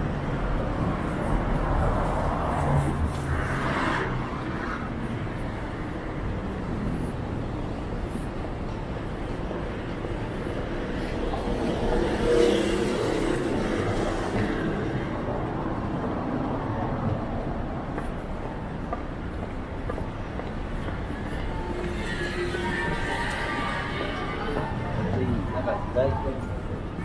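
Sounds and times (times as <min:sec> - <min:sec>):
passers-by voices: 0:00.0 - 0:27.0
road traffic: 0:00.0 - 0:27.0.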